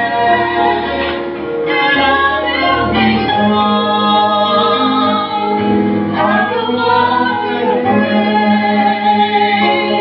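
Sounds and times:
musical accompaniment: 0.0 - 10.0
woman singing into a microphone: 1.7 - 10.0.

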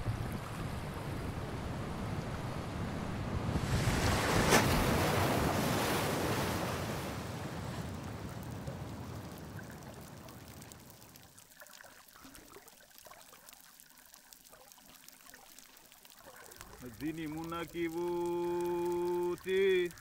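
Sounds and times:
sea water sloshing: 0.0 - 20.0
faint clicking: 7.9 - 20.0.

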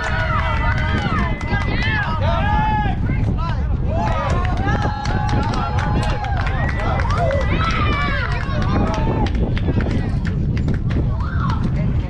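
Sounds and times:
people shouting and yelling: 0.0 - 10.2
wind rumble on microphone: 0.0 - 12.0.

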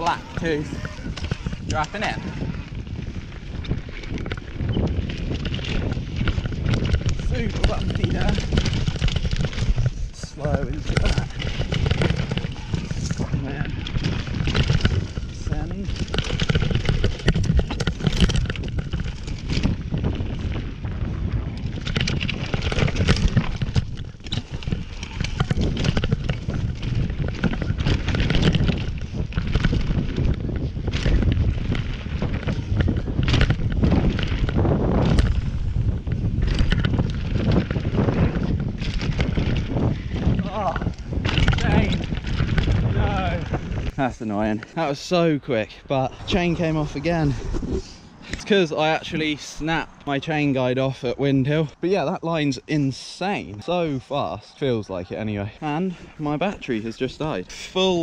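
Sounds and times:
bike rattling and knocking: 0.0 - 58.0
bike tyre noise on dirt: 0.0 - 58.0
wind buffeting microphone: 0.0 - 58.0.

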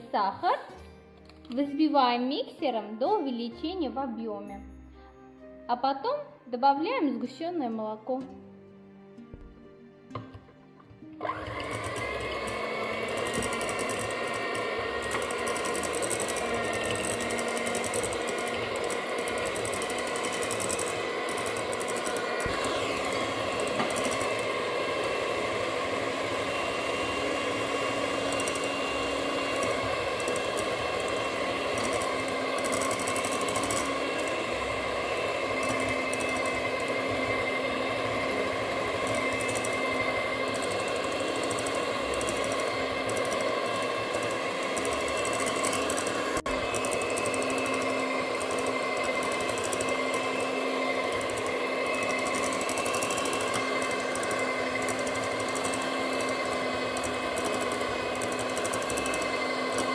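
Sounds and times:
electric hand mixer whipping: 11.1 - 59.9
beaters whipping in glass bowl: 11.5 - 59.9.

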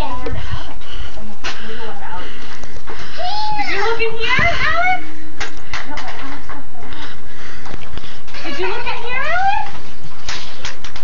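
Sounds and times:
faint voices: 0.0 - 9.9.

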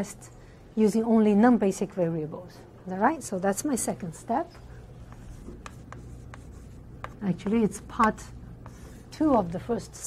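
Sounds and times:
low room hum: 0.0 - 10.0
chalk tapping and scratching on board: 5.0 - 10.0.

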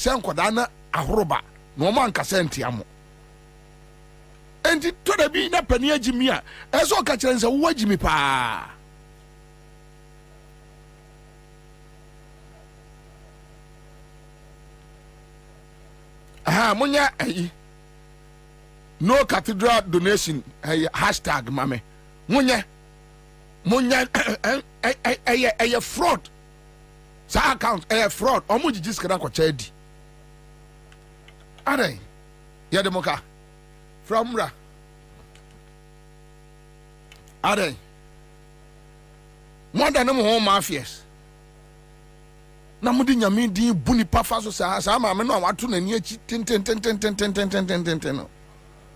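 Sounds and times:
man speaking: 0.0 - 2.9, 4.6 - 8.8, 16.4 - 17.6, 19.0 - 22.7, 23.6 - 26.3, 27.3 - 29.7, 31.6 - 32.1, 32.7 - 33.3, 34.1 - 34.6, 37.4 - 37.9, 39.8 - 41.1, 42.8 - 48.3
electrical mains hum: 0.0 - 48.9
man's voice: 4.7 - 8.8, 16.5 - 17.5.

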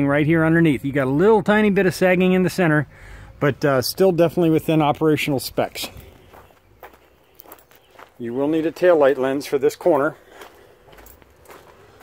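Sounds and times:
footsteps on gravel: 4.6 - 12.0.

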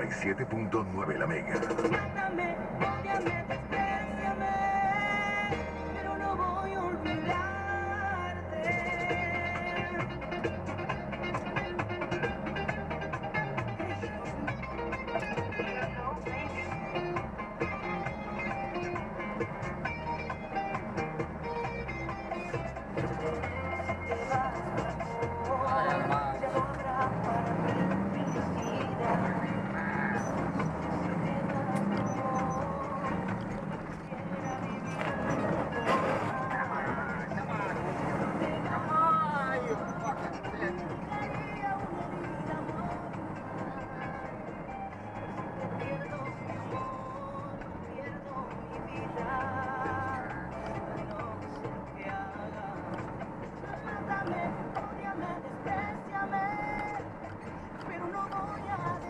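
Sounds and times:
bass line: 0.0 - 59.0
music from car radio: 0.0 - 59.0.

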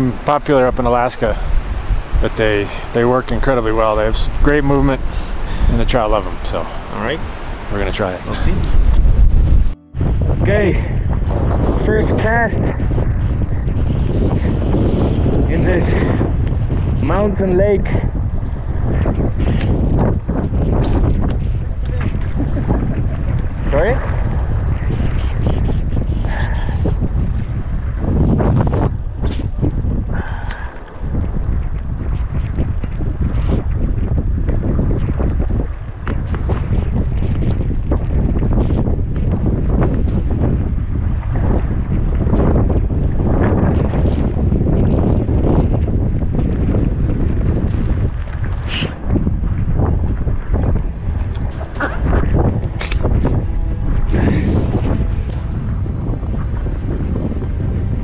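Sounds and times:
wind buffeting microphone: 0.0 - 58.0
background music: 1.0 - 11.8, 36.1 - 58.0.

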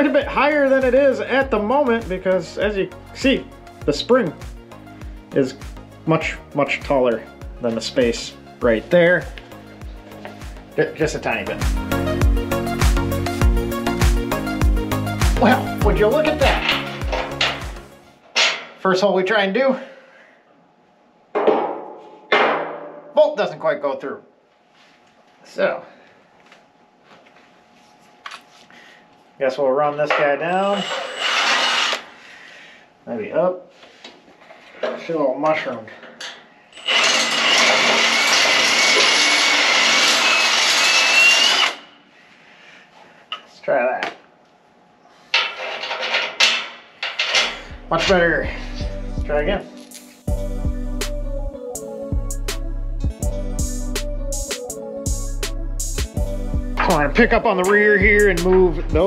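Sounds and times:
background music with a beat: 11.6 - 17.9, 48.8 - 57.2
metal scraping and clinking: 15.4 - 18.7, 30.1 - 32.1, 36.8 - 41.9, 45.3 - 48.2.

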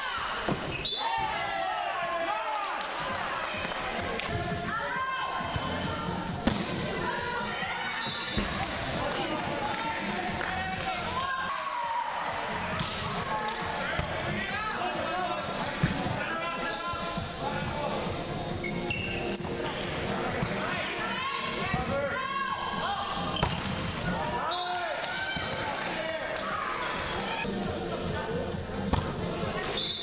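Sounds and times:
players' voices: 0.0 - 30.0.

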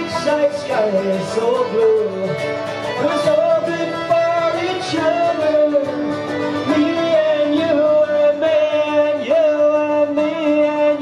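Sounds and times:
banjo: 0.0 - 11.0
fiddle melody: 0.0 - 11.0.

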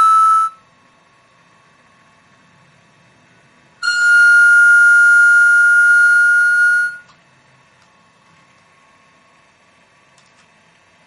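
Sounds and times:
steady high-pitched tone: 0.0 - 0.7, 3.8 - 7.1.

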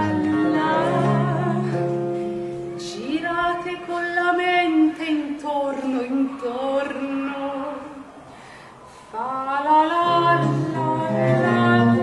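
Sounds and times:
woman singing: 0.0 - 8.1, 9.2 - 12.0.

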